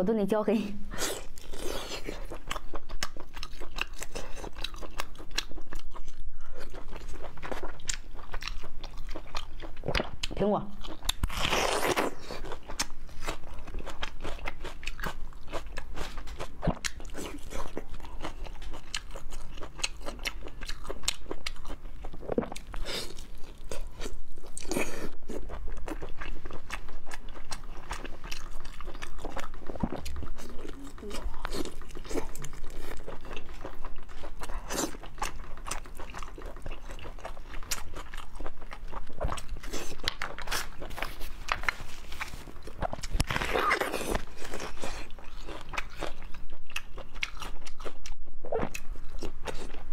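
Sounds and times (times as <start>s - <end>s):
wet chewing and smacking: 0.9s - 49.9s.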